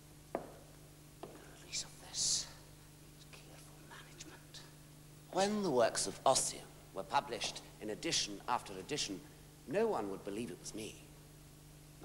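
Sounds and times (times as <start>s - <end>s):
low steady hum: 0.0s - 12.0s
faint whispering: 1.3s - 4.8s.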